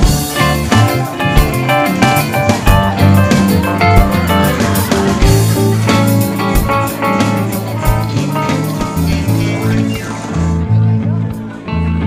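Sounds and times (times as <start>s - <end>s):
steady drum beat: 0.0s - 10.5s
bass guitar: 0.0s - 12.0s
electric guitars: 0.0s - 12.0s.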